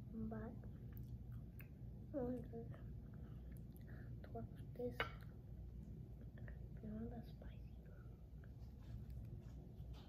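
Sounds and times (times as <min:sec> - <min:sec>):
steady low hum: 0:00.0 - 0:10.0
faint voice whispering: 0:06.4 - 0:08.2.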